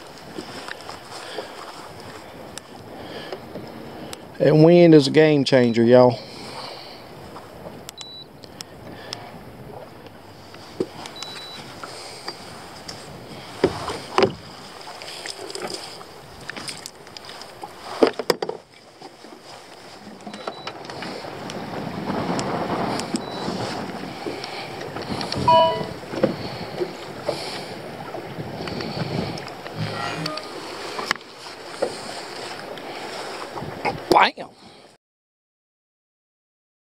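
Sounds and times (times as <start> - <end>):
water lapping against boat: 0.0 - 35.0
wind buffeting microphone: 6.2 - 14.9, 20.0 - 31.1.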